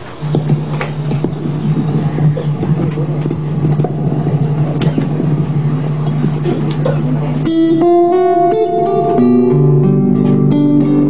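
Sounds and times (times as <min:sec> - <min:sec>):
loud steady low hum: 0:00.0 - 0:11.0.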